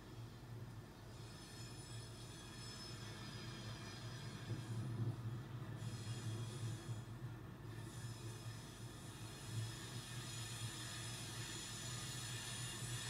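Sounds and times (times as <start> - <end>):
train rumble: 0.0 - 13.0.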